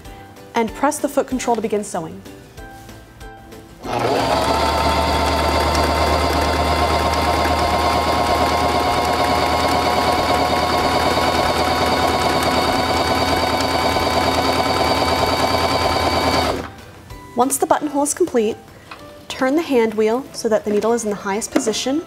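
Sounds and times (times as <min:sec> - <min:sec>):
sewing machine motor hum: 0:03.8 - 0:16.7.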